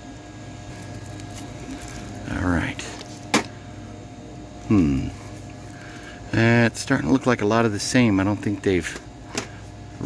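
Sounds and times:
steady store hum: 0.0s - 10.0s
person murmuring: 4.6s - 5.3s.

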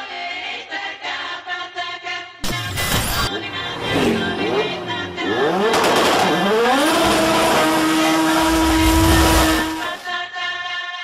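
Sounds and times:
car engine revving: 3.2s - 10.1s.

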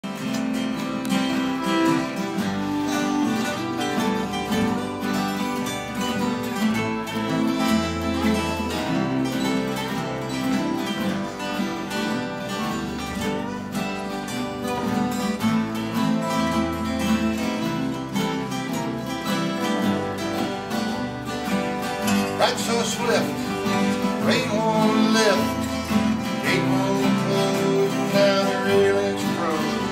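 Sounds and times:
acoustic guitars strumming: 0.0s - 29.9s.

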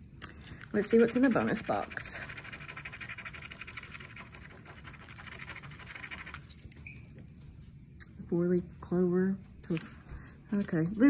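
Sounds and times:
coin scratching lottery ticket: 0.8s - 6.7s.

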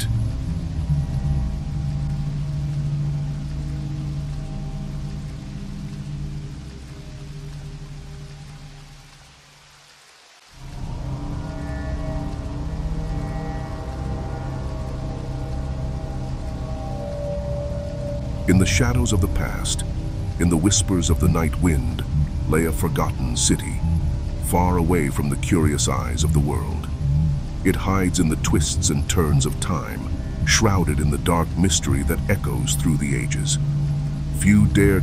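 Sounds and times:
dark ambient drone music: 0.0s - 35.0s
rain: 0.0s - 35.0s.

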